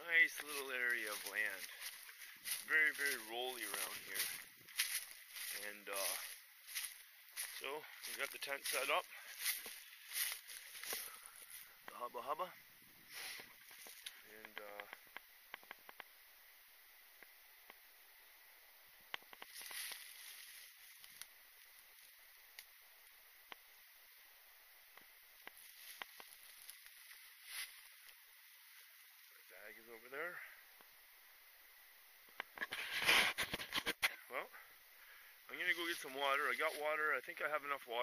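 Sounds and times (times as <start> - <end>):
footsteps crunching dry leaves: 0.0 - 11.8, 13.6 - 14.2, 19.4 - 21.3, 25.5 - 28.1
faint steady hiss: 0.0 - 38.0
small clicks and rustles: 13.4 - 16.1, 19.1 - 22.7, 24.9 - 28.2.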